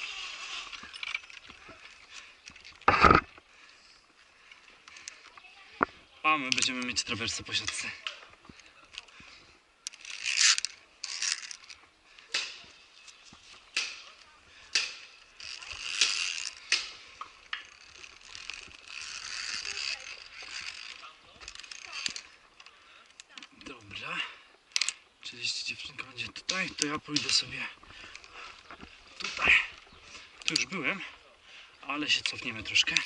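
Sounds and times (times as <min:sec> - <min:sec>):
metal carabiners clinking and scraping: 0:00.0 - 0:03.4, 0:04.4 - 0:09.2, 0:09.8 - 0:24.1, 0:24.7 - 0:31.2, 0:31.8 - 0:33.0.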